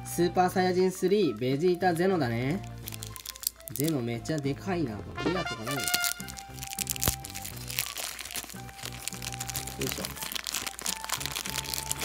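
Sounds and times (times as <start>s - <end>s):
background music: 0.0s - 12.0s
plastic bag crinkling: 1.0s - 4.5s, 5.6s - 12.0s.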